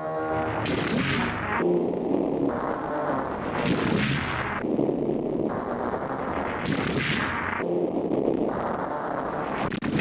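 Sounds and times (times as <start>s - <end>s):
distorted electronic music loop: 0.0s - 10.0s.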